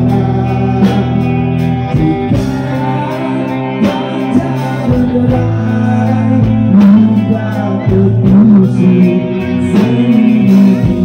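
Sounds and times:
electric guitar chords: 0.0 - 11.0
man singing: 0.0 - 11.0.

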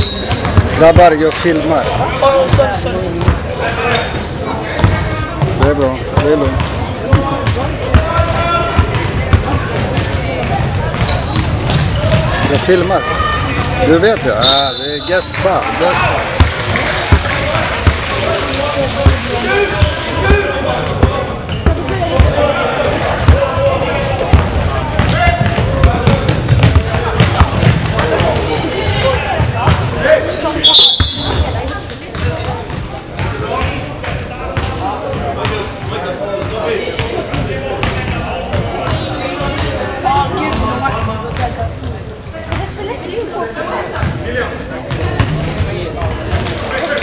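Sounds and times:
referee's whistle: 0.0 - 0.6, 14.4 - 15.2, 30.6 - 31.4
players and spectators calling out: 0.0 - 47.0
ball bouncing on wooden court: 0.2 - 1.7, 3.1 - 14.3, 19.8 - 22.4, 23.2 - 29.9, 30.8 - 39.8.

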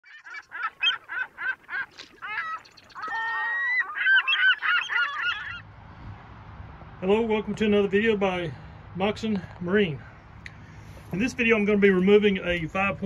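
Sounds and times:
loud honking bird calls: 0.1 - 5.7.

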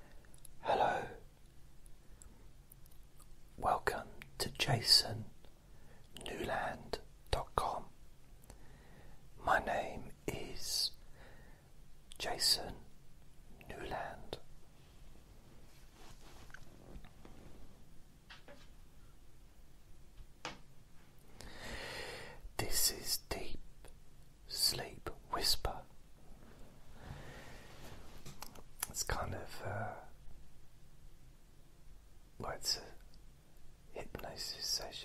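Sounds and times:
person whispering: 0.4 - 1.3, 3.6 - 5.4, 6.1 - 8.0, 9.4 - 11.0, 12.1 - 12.9, 13.5 - 14.5, 22.5 - 23.9, 24.5 - 25.9, 28.5 - 30.2, 32.4 - 33.1, 33.9 - 35.0.

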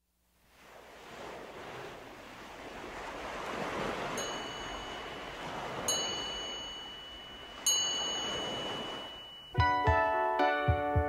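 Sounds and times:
ocean surf: 0.4 - 10.8
chime notes ringing: 4.2 - 10.9.

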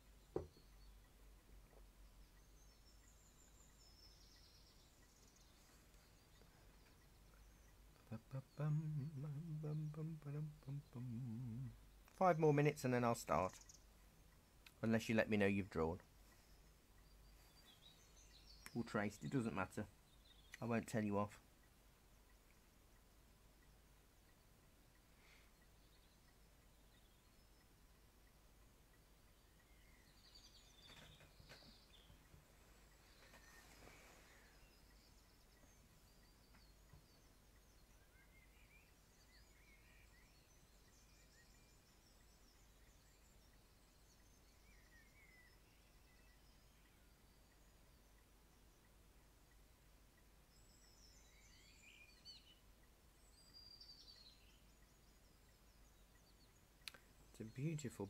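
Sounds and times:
songbirds chirping and trilling: 0.0 - 58.0.

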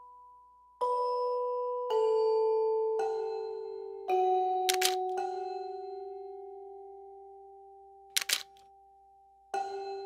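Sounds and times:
camera shutter clicking: 4.7 - 5.0, 8.2 - 8.6.

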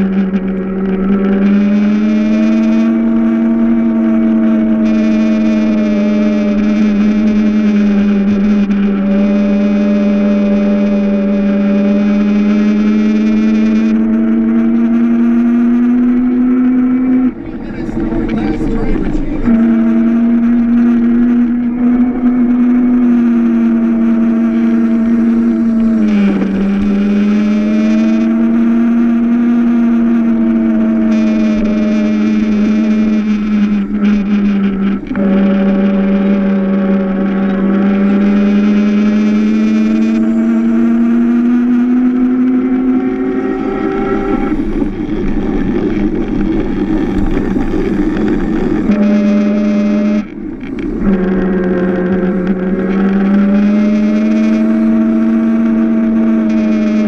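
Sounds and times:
electric motor whining: 0.0 - 57.0.

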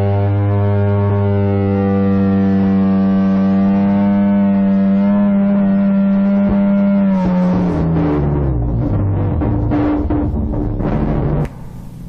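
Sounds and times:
band droning chord: 0.0 - 12.0.

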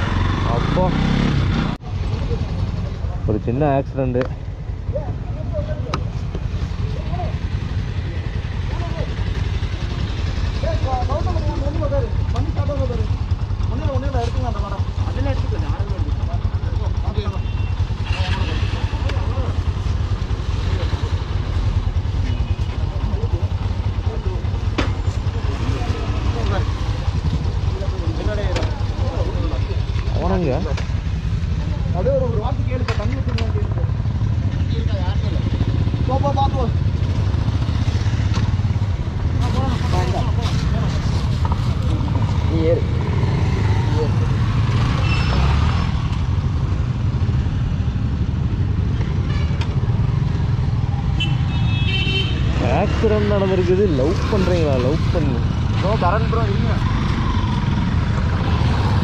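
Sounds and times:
men talking: 0.4 - 37.2, 38.9 - 44.9, 52.4 - 57.8
motorcycle engine idling: 4.2 - 40.5.

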